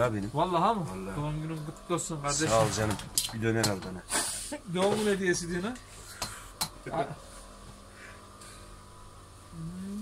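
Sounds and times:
man humming a drawn-out note: 9.5s - 10.0s.

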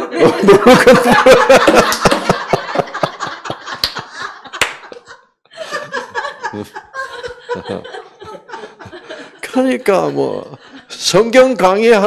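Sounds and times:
laughter through microphone: 0.0s - 9.4s.

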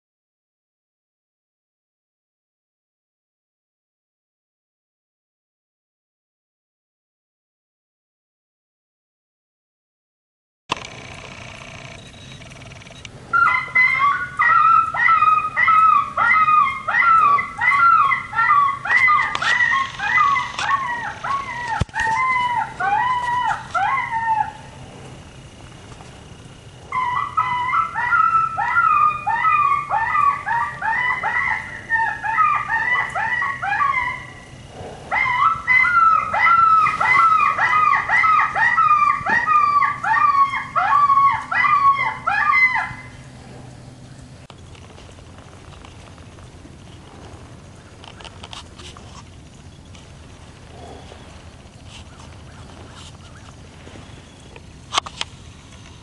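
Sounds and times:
electronic caller canine yipping: 11.9s - 24.7s, 26.9s - 43.2s.

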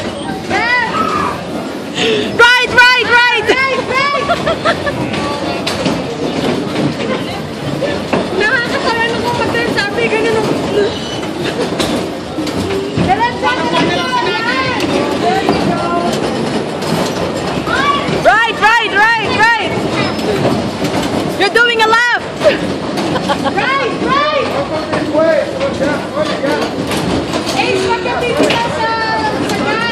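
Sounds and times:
bumper cars rumbling clatter: 0.0s - 29.9s
riders laughing: 3.5s - 5.4s, 22.4s - 24.0s.

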